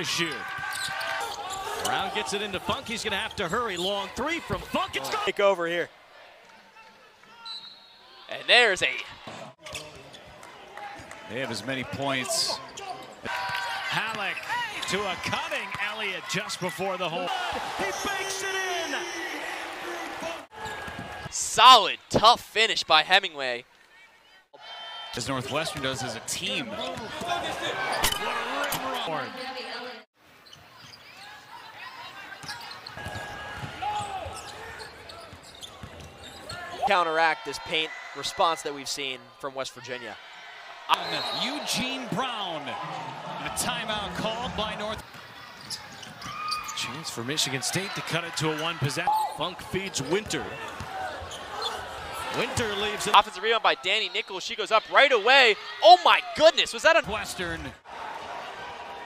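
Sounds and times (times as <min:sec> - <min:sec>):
basketball court noise: 0:00.0 - 0:39.1, 0:39.8 - 0:59.0
basketball bouncing on court: 0:32.4 - 0:36.6.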